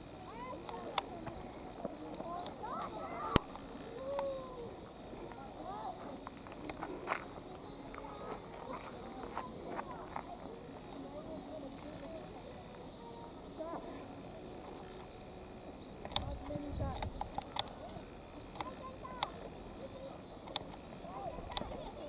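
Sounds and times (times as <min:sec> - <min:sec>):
distant shouts of young players: 0:02.6 - 0:04.8.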